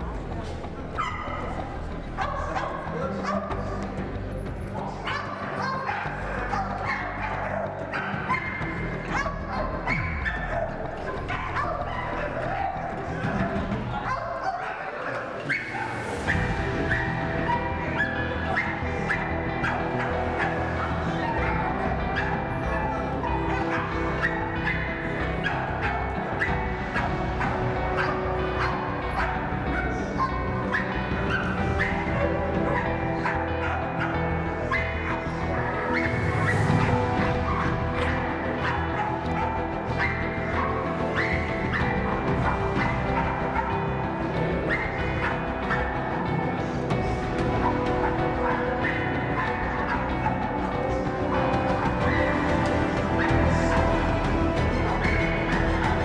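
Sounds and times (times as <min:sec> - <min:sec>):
music: 0:00.0 - 0:56.0
dog barking: 0:01.0 - 0:03.8, 0:04.8 - 0:56.0.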